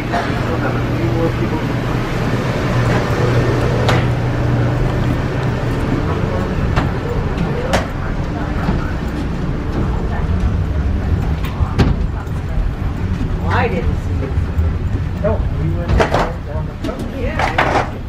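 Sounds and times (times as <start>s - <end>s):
background voices: 0.0s - 18.0s
machinery hum and rumble: 0.0s - 18.0s.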